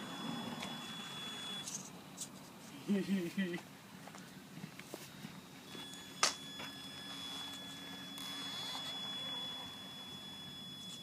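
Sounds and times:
electric motor whining: 0.0s - 1.9s, 5.7s - 11.0s.

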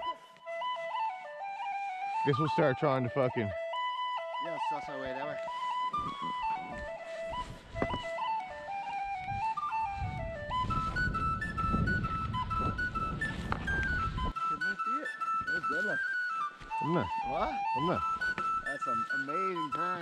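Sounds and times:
flute-like melody: 0.0s - 20.0s
rush of wind and snow: 6.0s - 14.5s.

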